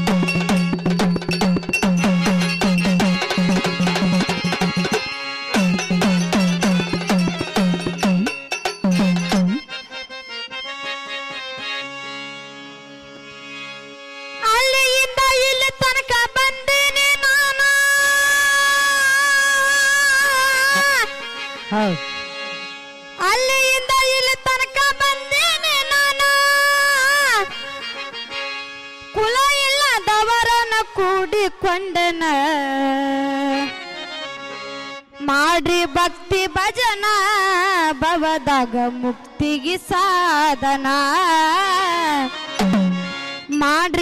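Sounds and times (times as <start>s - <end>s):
hand drums playing fast rhythm: 0.0s - 9.7s, 42.6s - 43.2s
sustained harmonium chords: 0.0s - 44.0s.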